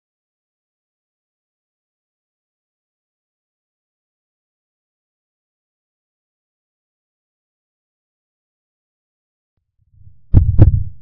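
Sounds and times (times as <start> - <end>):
faint low rumble: 9.9 - 11.0
heartbeat double thump: 10.0 - 11.0.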